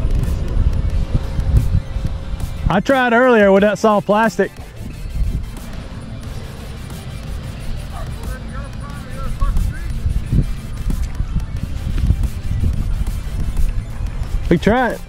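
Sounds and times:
low rumble: 0.0 - 2.9
wind buffeting microphone: 0.0 - 15.0.

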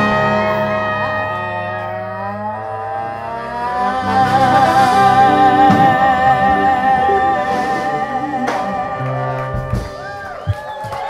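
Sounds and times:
wavering held note: 0.0 - 10.3
jazz band playing: 3.5 - 10.4
female vocals: 3.6 - 9.0.

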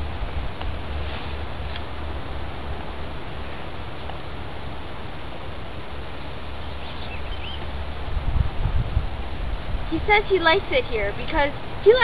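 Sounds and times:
low rumble on microphone: 0.0 - 12.0
short bird chirps: 6.6 - 7.6.

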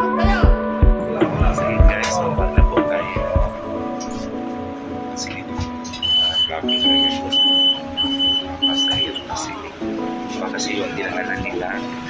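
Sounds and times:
background music: 0.0 - 12.0
short high electronic beeps: 5.9 - 9.4.

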